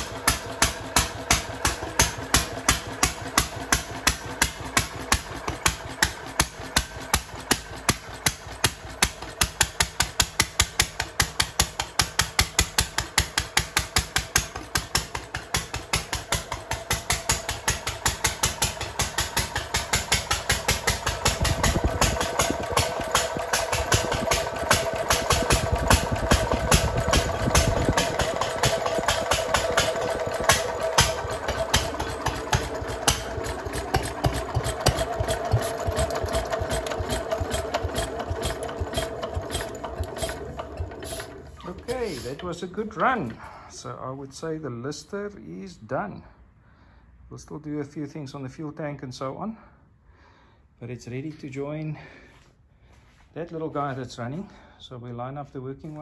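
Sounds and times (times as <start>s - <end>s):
single-cylinder engine running: 0.0s - 43.7s.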